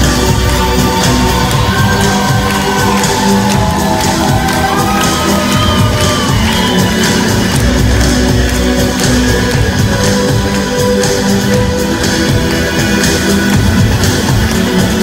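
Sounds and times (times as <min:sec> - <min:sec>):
crowd shouting and whooping: 0:00.0 - 0:10.3
amplified live music with beat: 0:00.0 - 0:15.0.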